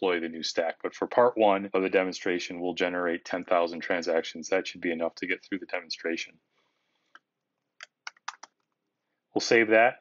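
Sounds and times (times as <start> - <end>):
faint keyboard keystrokes: 7.2 - 8.8.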